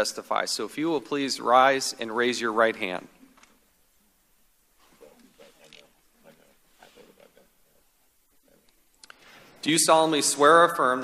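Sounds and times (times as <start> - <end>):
low scattered voices: 4.8 - 9.0.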